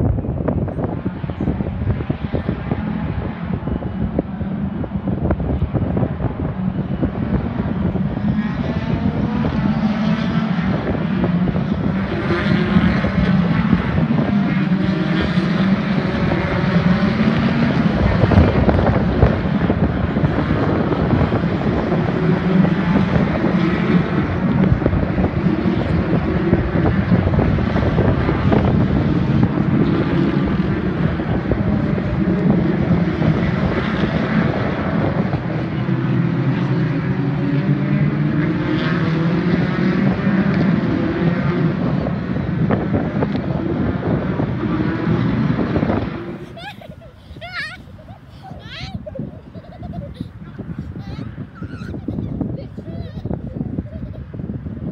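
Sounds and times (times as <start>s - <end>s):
racing cars passing: 0.0s - 54.9s
wind on microphone: 0.0s - 54.9s.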